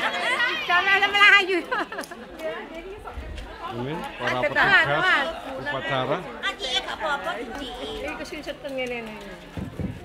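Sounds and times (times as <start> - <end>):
overlapping chatter of people: 0.0 - 10.0.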